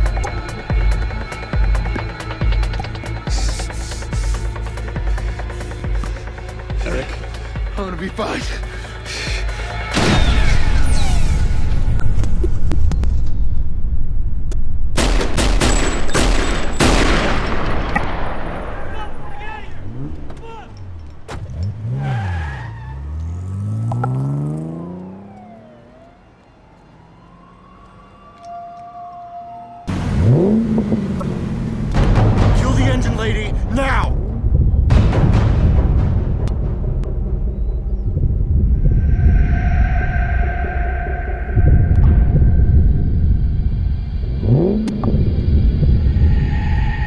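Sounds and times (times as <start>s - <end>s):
vehicle engine pitch swinging: 19.8s - 26.2s, 36.4s - 47.0s.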